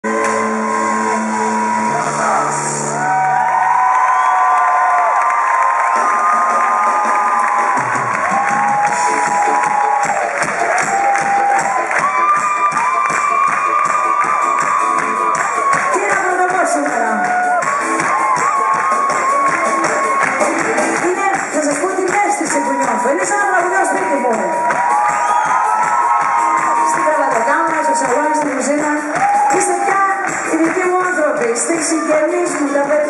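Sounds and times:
live pop band playing: 0:00.0 - 0:03.1, 0:05.9 - 0:33.0
crowd cheering: 0:00.0 - 0:33.0
woman singing: 0:26.9 - 0:33.0.

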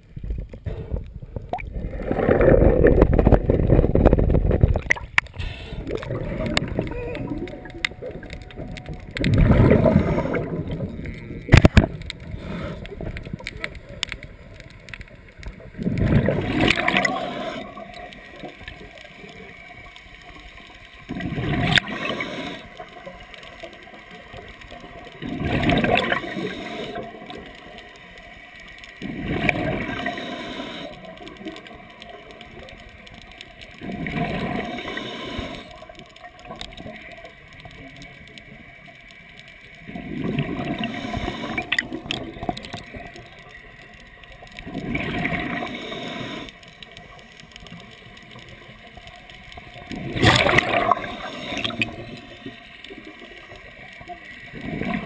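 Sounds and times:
underwater hiss: 0:05.3 - 0:07.4, 0:09.3 - 0:11.0, 0:11.8 - 0:13.8, 0:15.6 - 0:18.9, 0:20.9 - 0:24.1, 0:25.2 - 0:31.9, 0:33.7 - 0:36.2, 0:39.9 - 0:43.2, 0:44.6 - 0:47.2, 0:49.7 - 0:55.0
regulator exhaust bubbles underwater: 0:05.8 - 0:13.5, 0:15.5 - 0:18.0, 0:25.2 - 0:27.3, 0:49.8 - 0:52.5.

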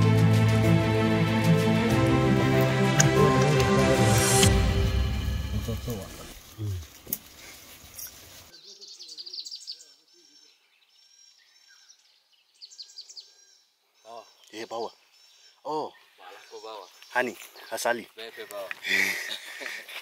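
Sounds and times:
background music: 0:00.0 - 0:06.4
birds chirping: 0:01.4 - 0:20.0
man's voice: 0:01.9 - 0:06.8.

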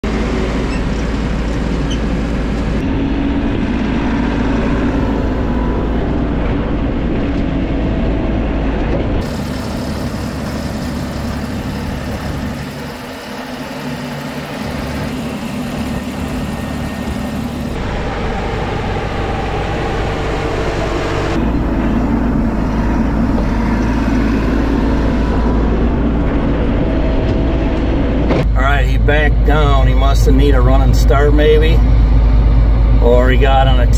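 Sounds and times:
tractor diesel engine running: 0:00.0 - 0:33.9.

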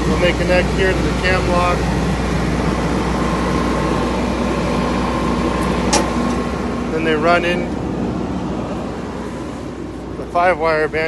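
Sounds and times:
generator engine running: 0:00.0 - 0:11.0.

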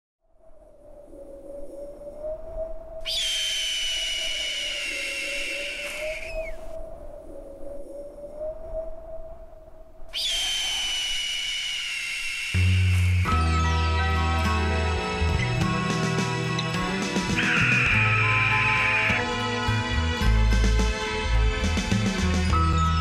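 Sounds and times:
wavering whistling drone: 0:00.4 - 0:14.6
eagle scream: 0:03.0 - 0:06.7, 0:10.1 - 0:13.3, 0:17.2 - 0:19.4
music: 0:12.7 - 0:23.0.

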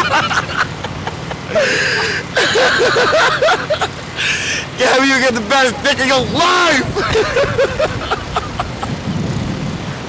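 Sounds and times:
people laughing: 0:00.0 - 0:04.8, 0:06.8 - 0:09.0
wind rushing over microphone: 0:06.2 - 0:10.0.

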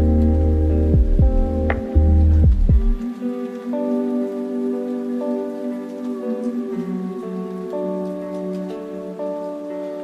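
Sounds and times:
deep bass: 0:00.0 - 0:03.0
held chords: 0:00.0 - 0:10.0
rain-like hiss: 0:00.0 - 0:10.0
falling-pitch kick drums: 0:00.8 - 0:03.1.

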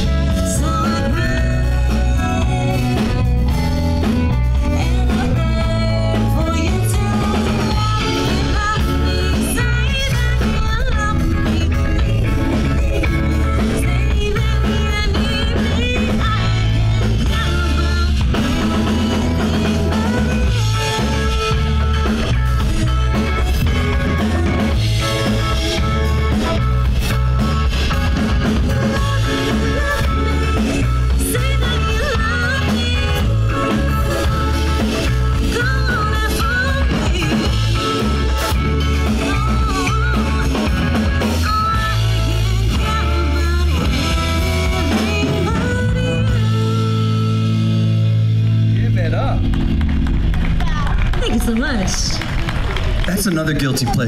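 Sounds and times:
rock band final chord: 0:00.0 - 0:51.2
drum kit: 0:00.0 - 0:54.0
electric bass: 0:00.0 - 0:54.0
electric guitars: 0:00.0 - 0:54.0.

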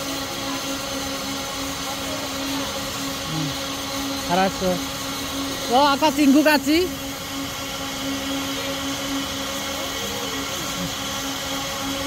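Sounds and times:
mechanical whirring with low hum: 0:00.0 - 0:12.0.

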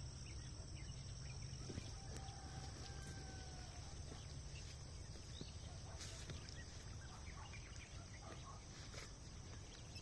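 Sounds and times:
distant fowl calling: 0:00.0 - 0:10.0
insects droning: 0:00.0 - 0:10.0.

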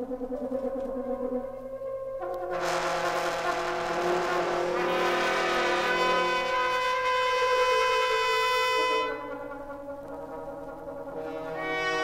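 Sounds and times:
dissonant brass and woodwind chord: 0:01.8 - 0:12.0
rough high hissing layer: 0:02.5 - 0:06.8.

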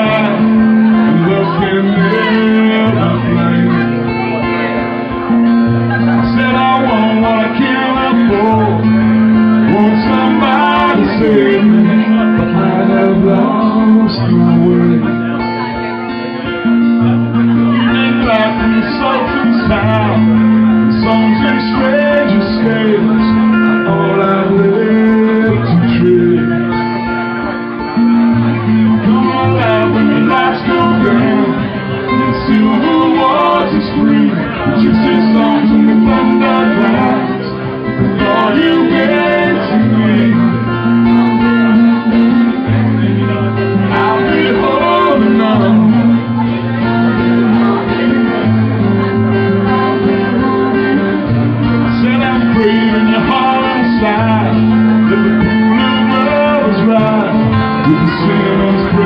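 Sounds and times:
live guitar music: 0:00.0 - 0:59.0.

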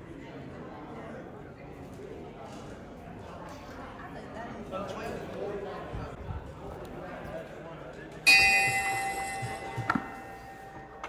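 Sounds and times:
brass bell ringing: 0:08.3 - 0:11.0.

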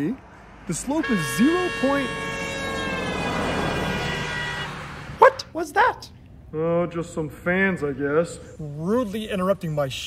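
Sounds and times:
horn long steady note: 0:01.0 - 0:05.0.

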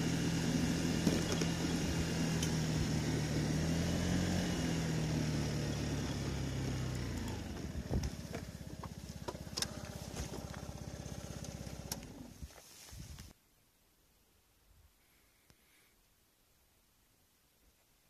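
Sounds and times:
scooter engine running: 0:00.0 - 0:12.5.

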